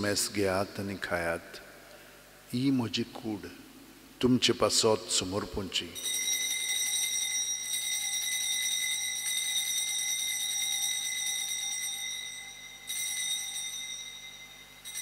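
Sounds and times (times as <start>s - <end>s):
altar bells trilling: 6.0s - 15.0s.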